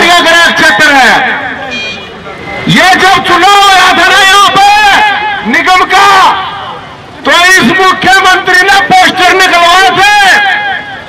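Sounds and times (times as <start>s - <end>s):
man speaking over loudspeakers: 0.0s - 11.0s
street noise: 0.0s - 11.0s.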